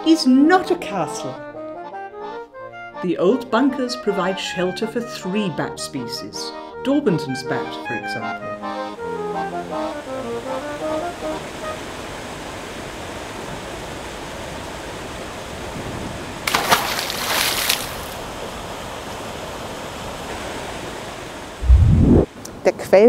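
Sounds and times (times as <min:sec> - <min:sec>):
water rushing down fountain: 0:16.4 - 0:18.4
loud rush of noise: 0:21.6 - 0:22.3.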